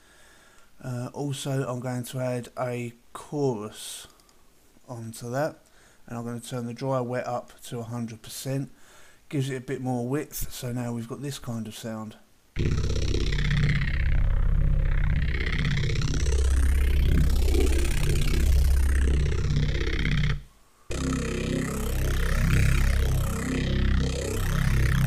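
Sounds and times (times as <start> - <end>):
heavy growling synth bass: 12.6 - 25.0.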